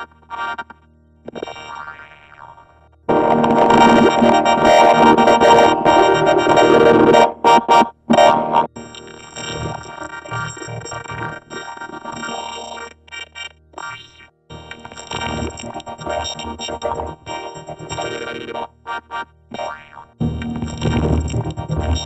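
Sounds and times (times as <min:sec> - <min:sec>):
buzzing synthesizer-like tones: 0:02.0 - 0:12.8, 0:19.6 - 0:22.0
vocoder synthesizer chords: 0:03.1 - 0:08.9, 0:14.5 - 0:22.0.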